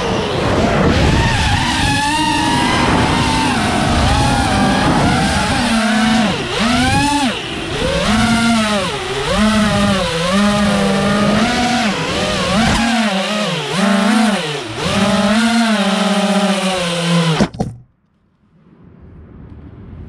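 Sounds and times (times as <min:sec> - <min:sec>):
quadcopter motors whining: 0:00.0 - 0:17.7.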